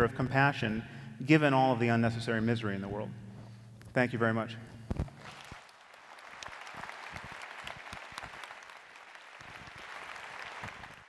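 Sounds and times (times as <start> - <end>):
audience applauding: 5.2 - 11.0.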